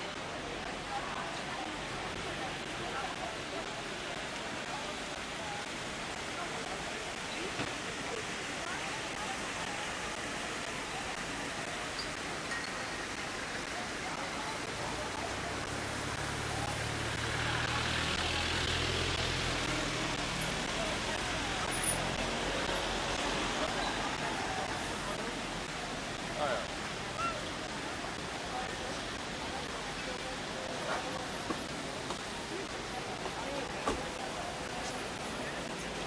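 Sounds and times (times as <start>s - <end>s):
distant crowd chatter: 0.0s - 36.0s
traffic: 0.0s - 36.0s.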